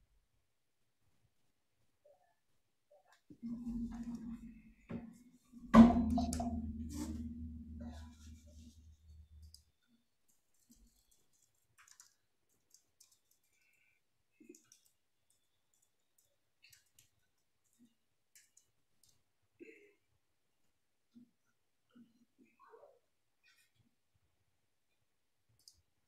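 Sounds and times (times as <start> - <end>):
low hum: 5.6 - 9.4
sharp knock: 5.7 - 8.6
faint scattered clicks: 9.4 - 19.2, 25.6 - 25.9.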